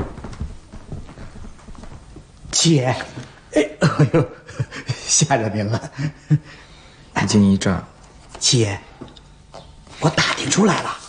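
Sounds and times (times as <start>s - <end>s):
footsteps on wooden floor: 0.0s - 3.4s.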